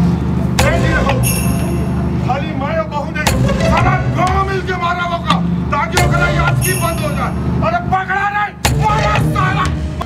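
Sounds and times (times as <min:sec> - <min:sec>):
low drone: 0:00.0 - 0:07.8
sharp booming hits: 0:00.6 - 0:02.1, 0:03.2 - 0:04.5.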